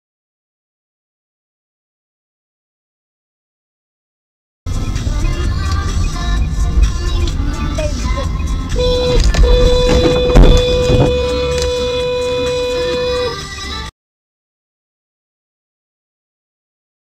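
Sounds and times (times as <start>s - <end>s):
music playing: 4.7s - 13.9s
steady horn-like tone: 8.8s - 13.4s
sharp thump: 9.3s - 11.2s.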